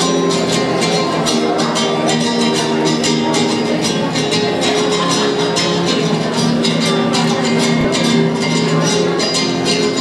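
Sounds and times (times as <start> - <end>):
classical guitars strummed: 0.0 - 10.0.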